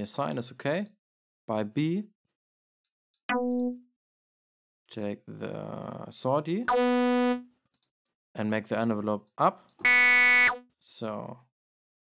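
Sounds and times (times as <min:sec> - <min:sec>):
sawtooth synthesizer note: 0:06.7 - 0:07.4, 0:09.9 - 0:10.6.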